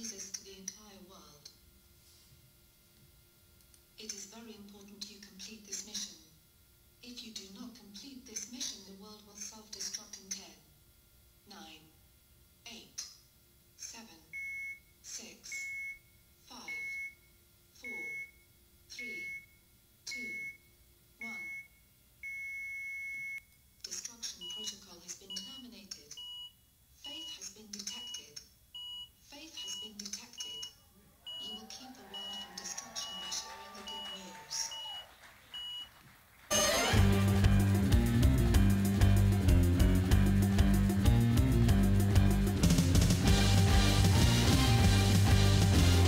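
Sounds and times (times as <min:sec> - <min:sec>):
loud tv static hiss: 0:29.2 - 0:39.0.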